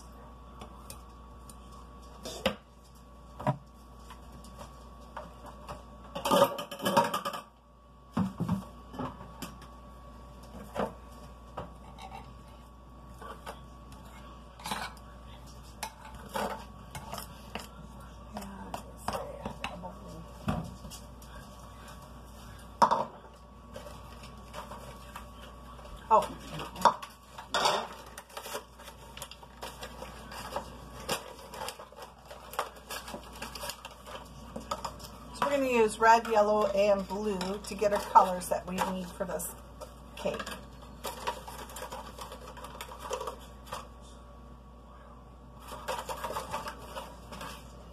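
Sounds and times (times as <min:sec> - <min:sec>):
utensils clinking on countertop: 0:26.6 - 0:28.6.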